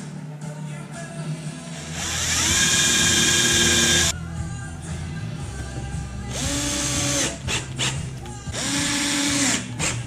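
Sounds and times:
power drill boring into wood: 2.0 - 4.1.

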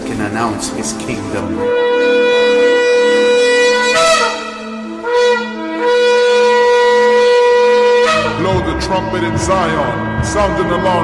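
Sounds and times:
shofar blasts: 1.4 - 11.0.

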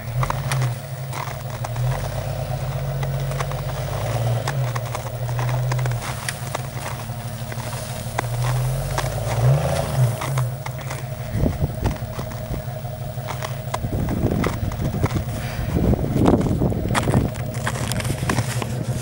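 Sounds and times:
suv engine pulling under load: 0.0 - 19.0
tires crunching in snow: 0.0 - 19.0.

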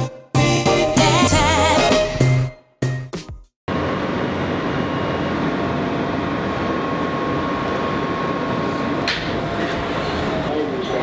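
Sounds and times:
subway train rumble: 3.7 - 11.0
thin steady whine: 3.7 - 11.0.

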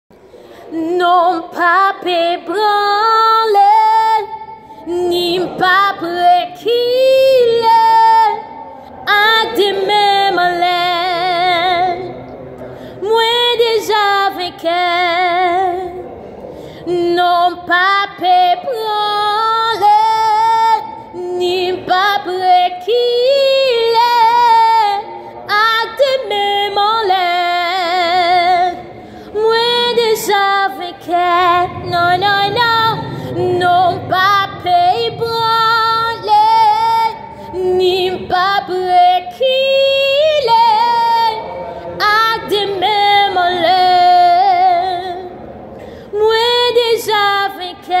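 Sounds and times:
woman singing gospel solo: 0.7 - 12.1, 13.0 - 16.0, 16.9 - 45.3, 46.1 - 48.0.

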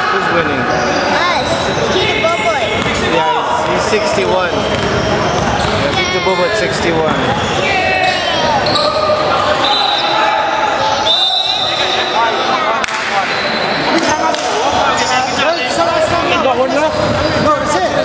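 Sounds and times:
players calling out: 0.0 - 18.0
basketball bouncing on wooden floor: 4.7 - 6.0.

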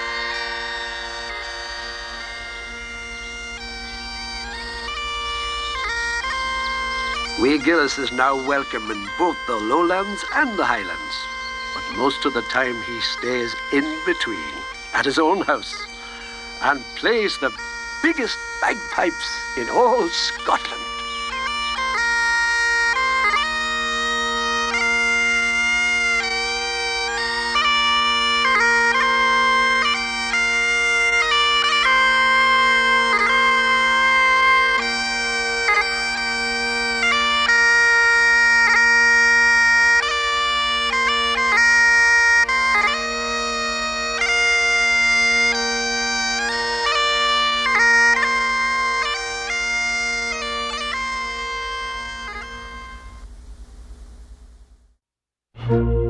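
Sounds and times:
bagpipes playing slow tune: 0.0 - 53.3, 55.6 - 56.0.

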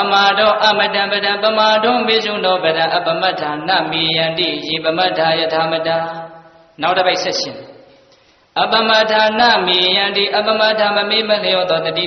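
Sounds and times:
monk chanting in monotone: 0.0 - 7.9, 8.6 - 12.0.

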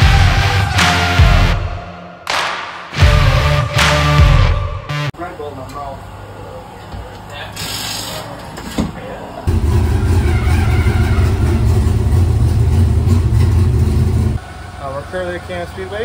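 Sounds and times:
race car engine running: 9.5 - 16.0.

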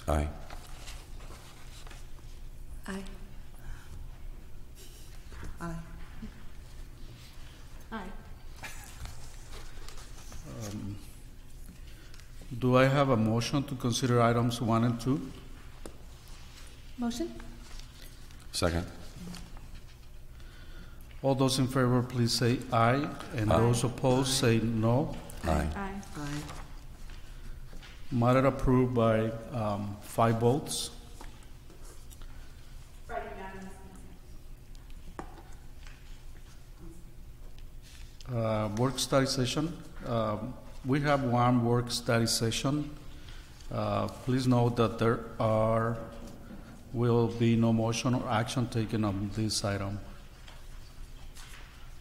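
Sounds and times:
room hum: 0.0 - 52.0.

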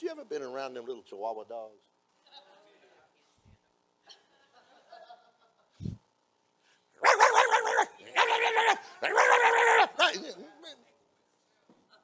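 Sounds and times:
man imitating dog yaps: 7.0 - 10.2.

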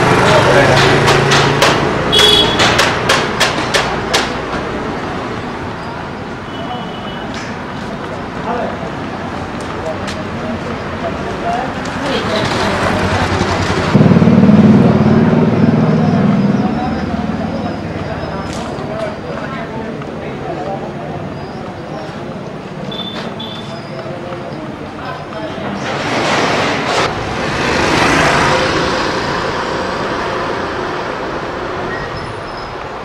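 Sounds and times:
steady traffic noise: 0.0 - 33.0
vehicle passing: 7.9 - 19.0, 25.8 - 31.9.

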